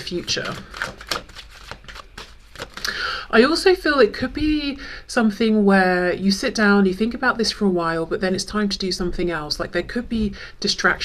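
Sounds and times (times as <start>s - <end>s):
cards being shuffled: 0.0s - 2.9s.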